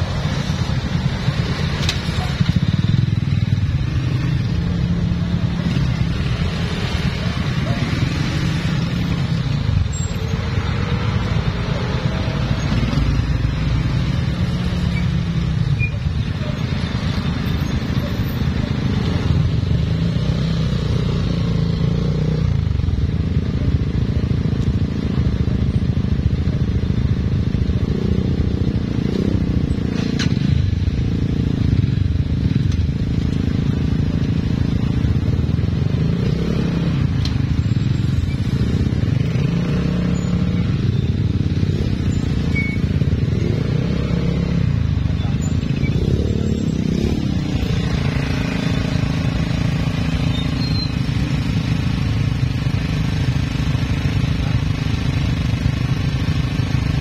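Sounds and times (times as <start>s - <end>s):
motorcycle engines droning: 0.0s - 57.0s.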